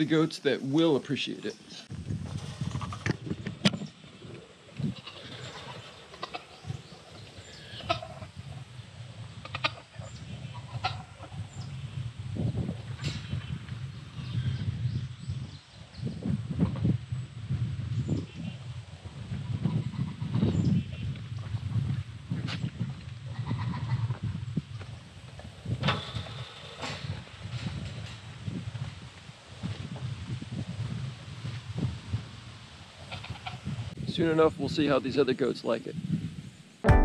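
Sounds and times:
faint farm animal calls: 4.8s - 8.5s, 9.4s - 11.9s, 23.3s - 24.2s, 33.0s - 33.7s.

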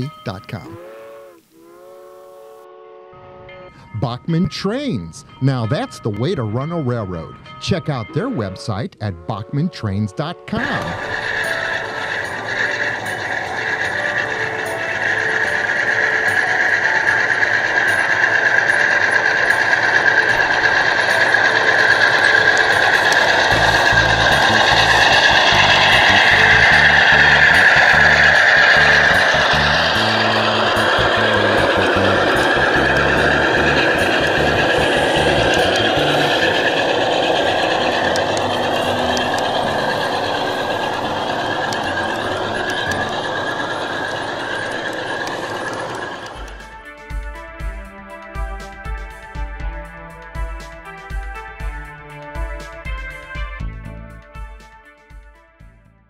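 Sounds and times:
train wheels squealing: 6.0s - 46.7s
wheels rumbling over rail: 10.2s - 54.0s.

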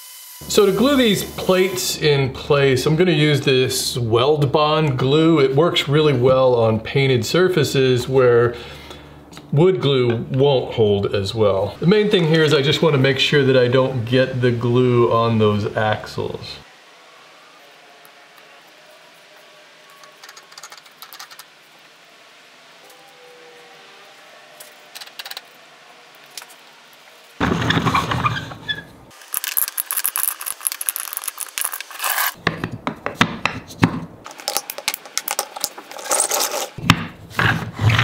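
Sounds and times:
toy wheels rolling and scraping: 19.4s - 21.7s, 26.2s - 32.4s, 34.3s - 36.8s.

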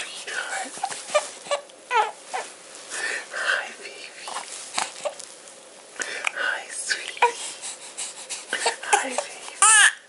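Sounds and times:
baby fussing and crying: 0.7s - 2.6s, 4.3s - 5.2s, 7.0s - 10.0s.

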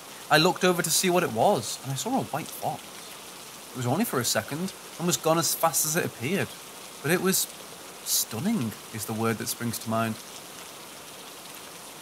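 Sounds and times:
rain patter: 0.0s - 12.0s.

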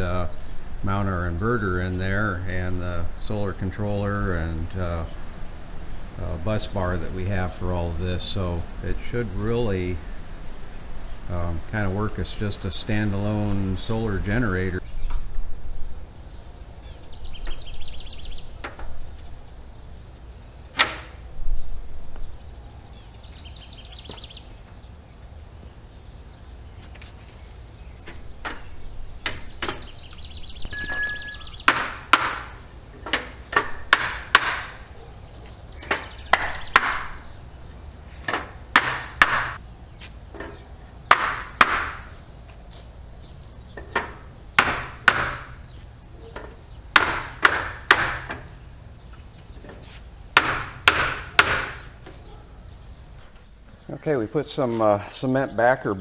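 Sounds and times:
short metallic ring: 30.7s - 31.7s
hammer knocking on wooden block: 31.7s - 32.5s, 33.9s - 34.7s, 41.1s - 42.0s, 44.6s - 45.5s, 47.0s - 48.4s, 50.4s - 51.8s.

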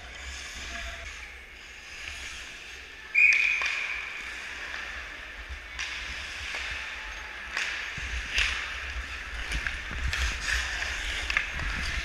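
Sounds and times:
skates on ice: 0.0s - 12.0s
hockey stick or puck clacks: 3.1s - 12.0s.

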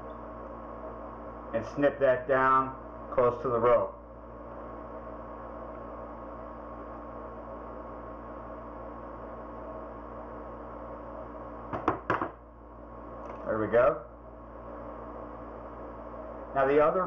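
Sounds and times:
background hum: 0.0s - 17.0s.

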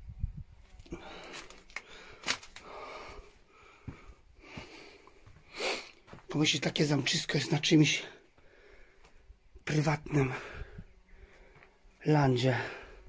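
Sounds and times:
person breathing and sniffing: 0.9s - 6.1s.

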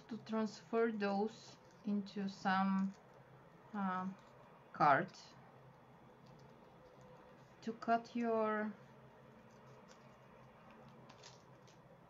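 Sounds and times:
faint room hum: 0.0s - 12.0s.

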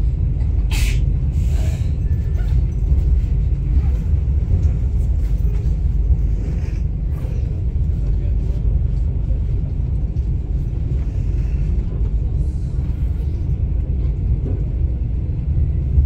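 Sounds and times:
train low rumble inside carriage: 0.0s - 16.0s.

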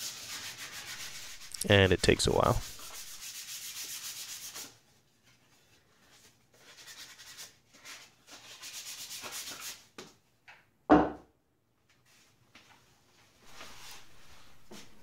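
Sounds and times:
sandpaper rubbing on wood: 0.0s - 4.8s, 6.6s - 9.8s, 13.5s - 14.9s
wooden thump on bench: 10.9s - 11.3s.

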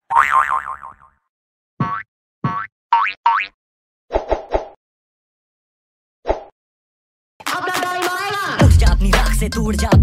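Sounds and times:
cartoon springy boing: 0.1s - 1.1s.

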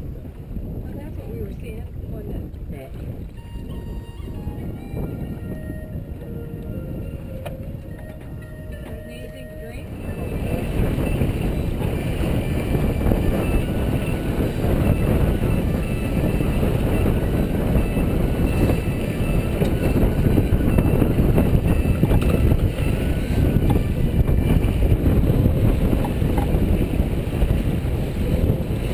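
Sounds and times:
water rushing past boat: 0.0s - 28.9s
wind buffeting microphone: 0.0s - 28.9s.

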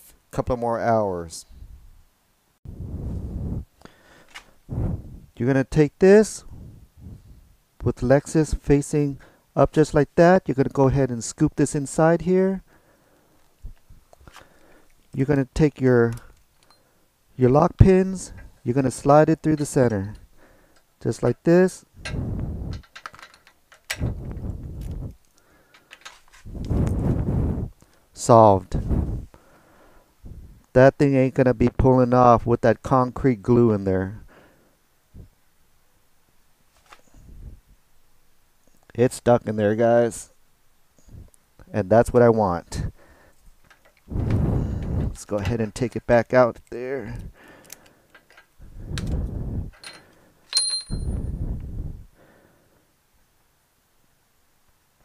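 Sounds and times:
low rumbling noise: 2.7s - 3.8s, 4.7s - 5.4s, 26.5s - 27.8s, 44.1s - 45.2s
metallic clink with ringing: 49.8s - 51.3s.

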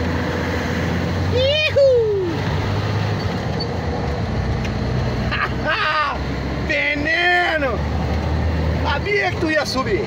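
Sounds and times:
truck diesel engine droning: 0.0s - 10.0s.

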